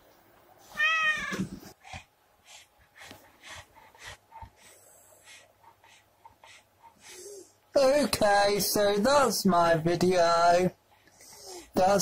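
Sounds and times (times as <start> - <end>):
cat meowing: 0.7 - 1.6.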